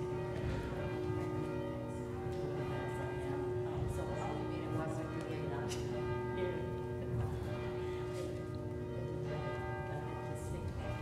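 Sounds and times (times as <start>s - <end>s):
church music with held tones: 0.0s - 11.0s.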